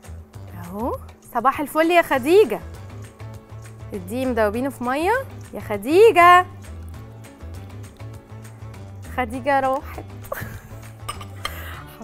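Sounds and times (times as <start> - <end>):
background music: 0.0 - 12.0
spatula clinking on pan: 11.1 - 11.6.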